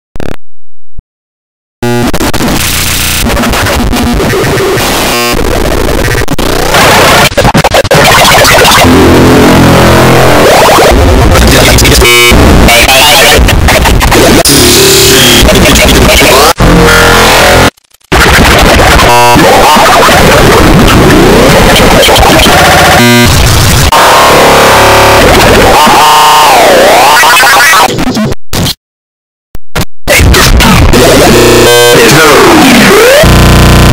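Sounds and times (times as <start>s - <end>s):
buzzing tone: 1.8s - 27.9s, 30.2s - 33.9s
distorted glitching electronic noise: 1.8s - 28.8s, 29.8s - 33.9s
harsh noise sound effects: 1.8s - 28.8s, 29.8s - 33.9s.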